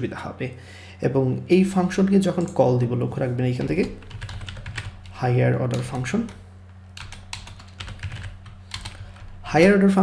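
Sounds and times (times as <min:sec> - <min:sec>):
person speaking: 0:00.0 - 0:06.4, 0:09.4 - 0:10.0
keyboard typing: 0:03.4 - 0:06.4, 0:07.0 - 0:09.4.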